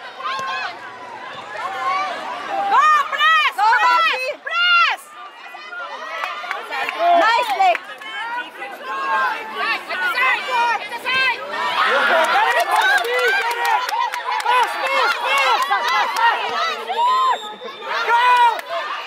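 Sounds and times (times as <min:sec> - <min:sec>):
children and spectators shouting: 0:00.0 - 0:19.0.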